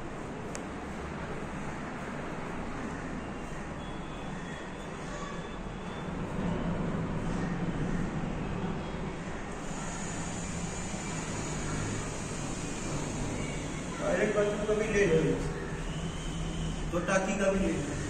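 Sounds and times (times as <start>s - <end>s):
rumble of passing traffic: 0.0s - 18.0s.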